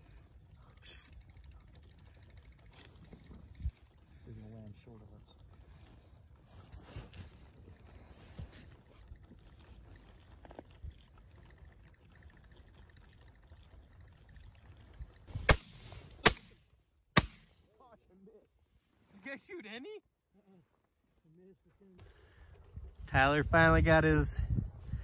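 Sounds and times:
shotgun shots: 0:15.4 - 0:16.6, 0:17.2 - 0:17.5.

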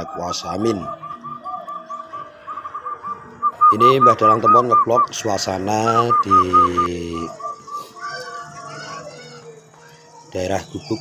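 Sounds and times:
bird chirping rapidly: 0:00.0 - 0:09.1.

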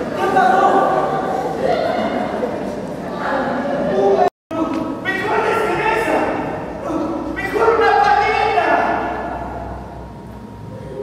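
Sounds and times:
people speaking: 0:00.0 - 0:09.3.

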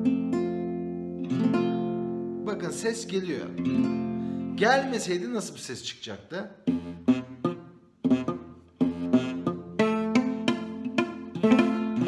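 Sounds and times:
acoustic guitar strings plucked: 0:00.0 - 0:04.6, 0:06.6 - 0:12.0.

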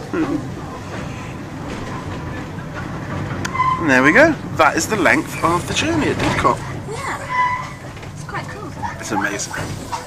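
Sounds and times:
train wheels rolling on rails: 0:00.0 - 0:10.0.

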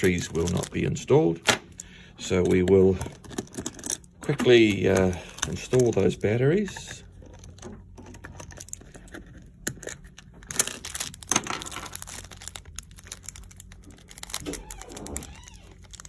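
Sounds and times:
plastic bag crinkling: 0:00.0 - 0:01.4, 0:02.2 - 0:07.6, 0:08.4 - 0:16.0.

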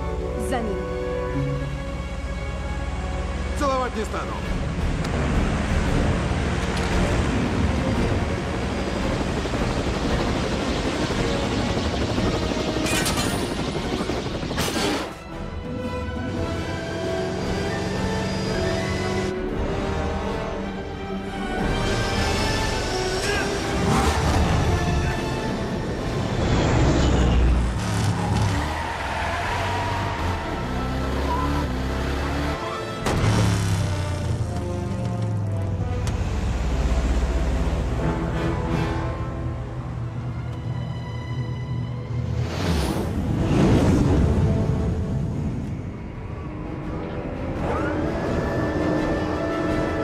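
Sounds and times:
aircraft engines droning: 0:00.0 - 0:14.6, 0:33.6 - 0:50.0
orchestral music: 0:00.0 - 0:50.0
speeding car: 0:25.9 - 0:37.4
aircraft engines rumbling: 0:33.6 - 0:42.4.

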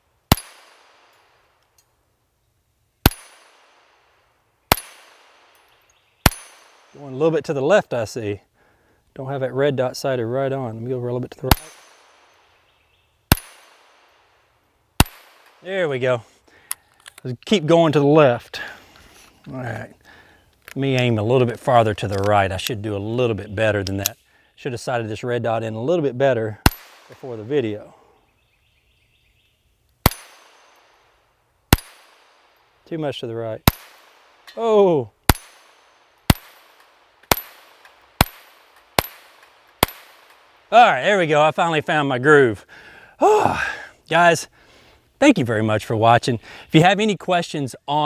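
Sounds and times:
pistol shots with echo: 0:00.3 - 0:01.2, 0:03.0 - 0:04.0, 0:04.7 - 0:05.6, 0:06.2 - 0:07.0, 0:11.5 - 0:12.6, 0:13.3 - 0:14.2, 0:15.0 - 0:15.6, 0:26.6 - 0:27.2, 0:30.0 - 0:30.9, 0:31.7 - 0:32.5, 0:33.6 - 0:34.4, 0:35.3 - 0:40.6.

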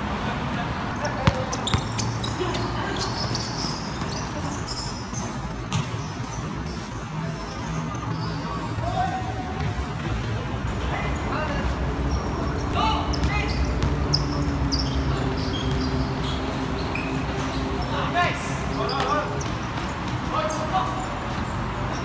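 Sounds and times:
players calling out: 0:00.7 - 0:04.8
basketball bouncing on court: 0:01.0 - 0:04.2, 0:05.2 - 0:06.1, 0:12.5 - 0:16.4.

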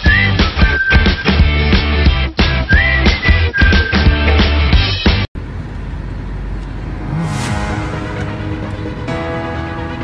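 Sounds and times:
road and engine rumble: 0:04.9 - 0:10.0
brief whoosh: 0:06.7 - 0:09.2.

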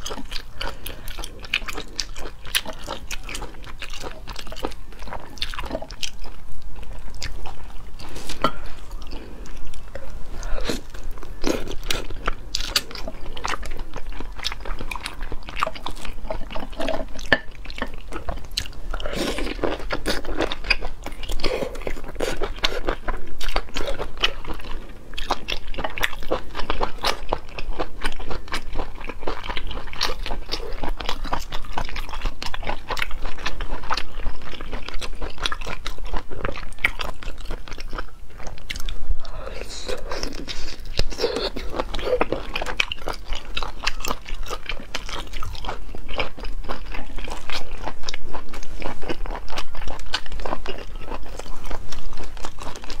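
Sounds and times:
chewing with wet smacks: 0:00.0 - 0:53.0.

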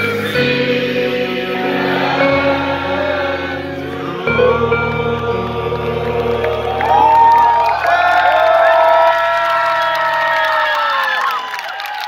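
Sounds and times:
crowd cheering and whooping: 0:04.4 - 0:12.0.

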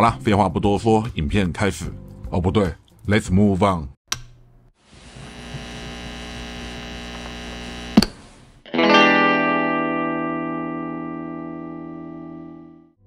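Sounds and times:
amplifier mains hum: 0:04.4 - 0:08.6
distorted electric guitar chord: 0:08.8 - 0:12.6.

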